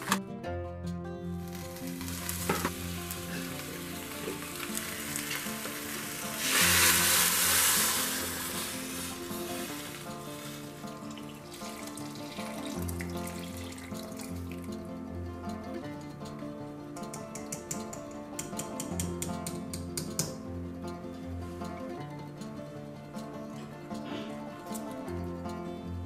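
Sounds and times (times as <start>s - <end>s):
instrumental background music: 0.0s - 26.0s
broth pouring into pot: 1.4s - 14.7s
sizzling in pot: 1.4s - 14.7s.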